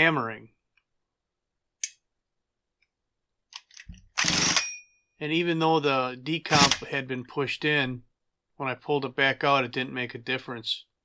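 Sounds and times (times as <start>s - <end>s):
impact driver hammering: 6.5s - 6.8s.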